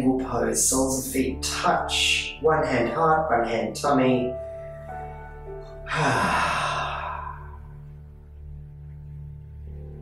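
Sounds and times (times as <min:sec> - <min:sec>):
soft background music drone: 0:00.0 - 0:10.0
man sighing: 0:05.9 - 0:07.8.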